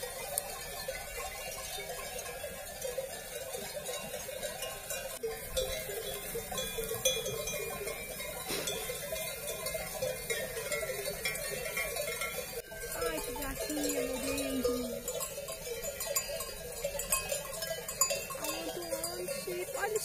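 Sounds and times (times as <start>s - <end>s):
sheep bells clanking: 0.0s - 20.0s.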